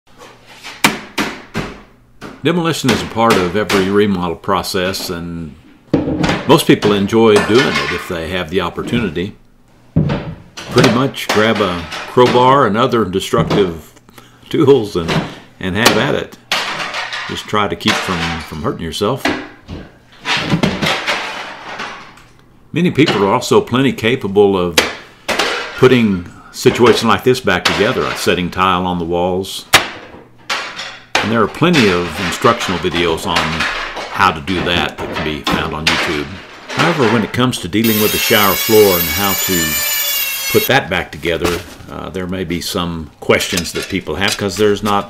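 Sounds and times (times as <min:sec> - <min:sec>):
hammer blows on glass enclosure: 0:37.8 - 0:40.7.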